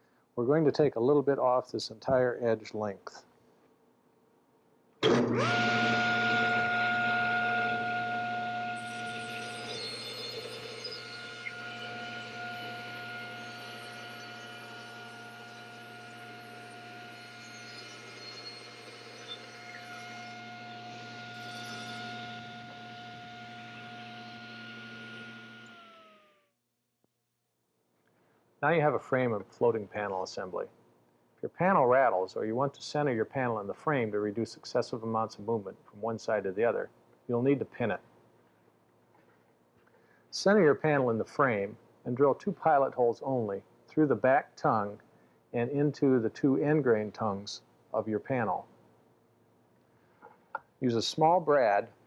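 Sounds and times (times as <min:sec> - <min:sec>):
saw blade cutting wood: 0:05.0 - 0:26.4
table saw whining: 0:05.0 - 0:26.5.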